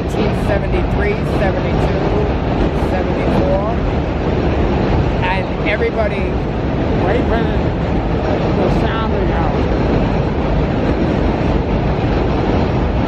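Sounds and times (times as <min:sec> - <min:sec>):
train rumbling past: 0:00.0 - 0:13.0.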